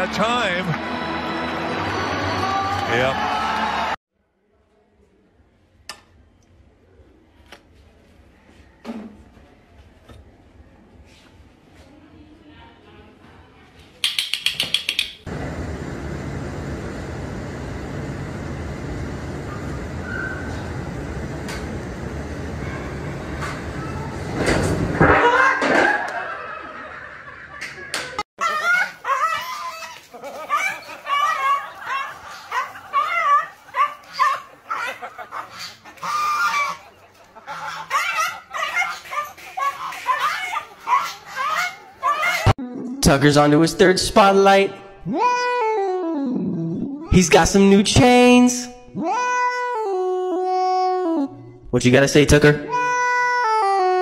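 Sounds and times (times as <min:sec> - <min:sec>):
dog barking and yelping: 0:28.4 - 0:42.6
goose honking: 0:34.0 - 0:42.5.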